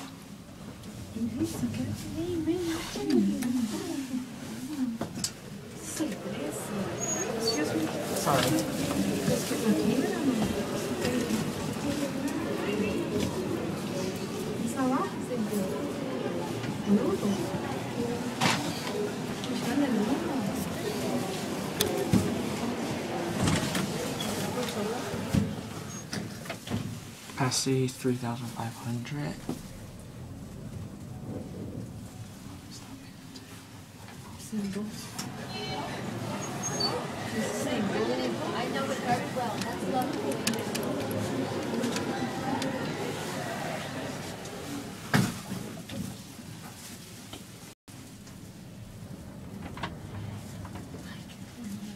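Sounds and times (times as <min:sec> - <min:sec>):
elevator car noise: 0:00.0 - 0:27.6, 0:28.9 - 0:46.8, 0:47.9 - 0:51.9
people talking indistinctly: 0:01.2 - 0:25.3.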